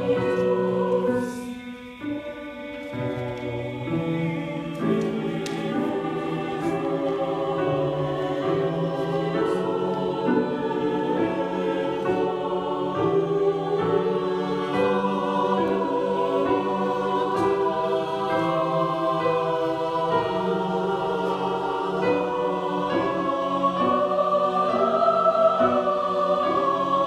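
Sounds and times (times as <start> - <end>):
mixed choir singing: 0.0 - 27.0.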